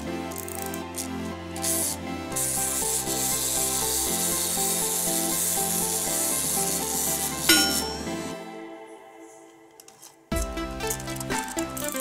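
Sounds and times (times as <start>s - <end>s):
background music: 0.0s - 12.0s
wind-up toy clockwork whirring: 0.3s - 8.3s, 10.8s - 12.0s.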